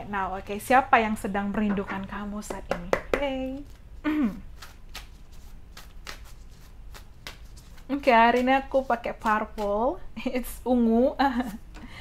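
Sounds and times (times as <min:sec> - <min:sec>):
cards being shuffled: 0:03.4 - 0:09.8.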